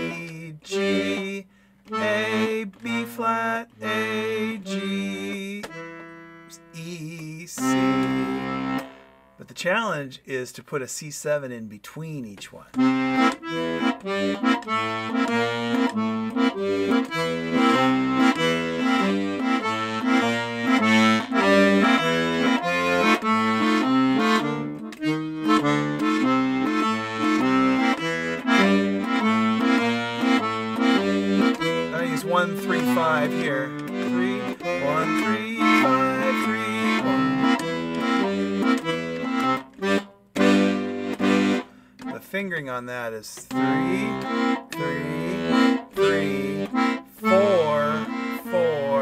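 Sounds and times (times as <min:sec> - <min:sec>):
piano accordion bass and chords: 0:00.0 - 0:09.6, 0:12.7 - 0:49.0.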